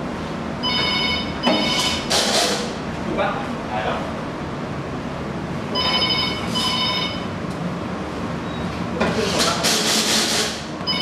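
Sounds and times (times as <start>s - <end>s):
steady background noise: 0.0s - 11.0s
ringing electronic tones: 0.6s - 2.0s, 5.7s - 7.3s.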